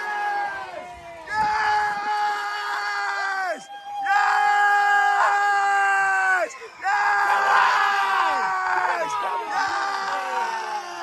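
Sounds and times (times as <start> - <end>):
long high steady shout: 0.0 - 11.0
people shouting and screaming: 0.0 - 11.0.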